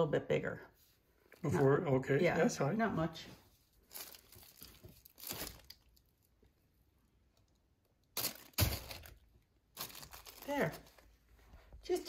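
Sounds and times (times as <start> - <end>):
plastic sheeting crinkling: 3.8 - 6.1, 8.1 - 11.4.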